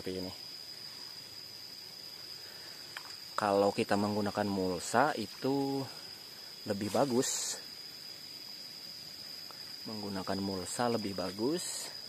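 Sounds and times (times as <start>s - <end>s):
crickets trilling: 0.0s - 12.0s
soft outdoor hiss: 0.0s - 12.0s.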